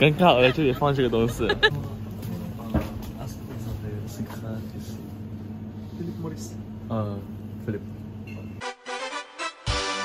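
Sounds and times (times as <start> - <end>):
steady low hum: 0.0 - 8.6
music: 8.6 - 10.0.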